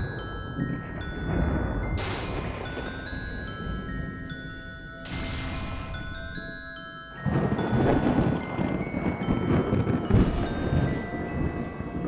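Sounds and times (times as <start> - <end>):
bell-like mallet music: 0.0 - 12.0
thunder rumbling: 0.0 - 12.0.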